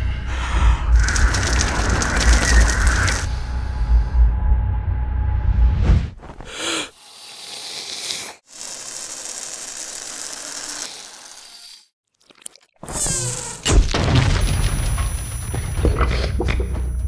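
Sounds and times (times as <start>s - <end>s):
hissing nasal in-breath: 6.3s - 8.7s.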